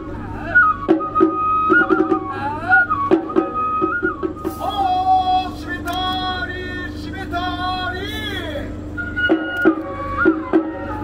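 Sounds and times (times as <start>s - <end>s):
bamboo flute playing: 0.0s - 11.0s
steady low hum: 0.0s - 11.0s.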